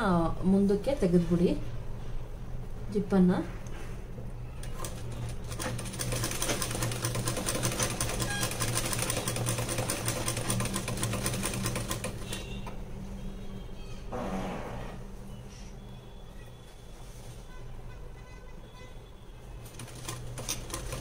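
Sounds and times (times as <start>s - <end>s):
sewing machine needle clattering: 19.7s - 21.0s.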